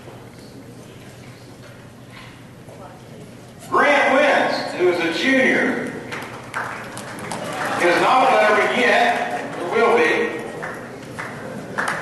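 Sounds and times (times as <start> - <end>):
man speaking: 3.7 - 5.8, 7.8 - 10.5.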